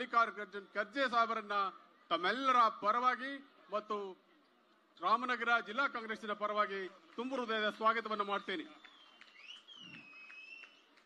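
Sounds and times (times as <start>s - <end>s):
faint high whistle-like tone: 8.8s - 10.9s.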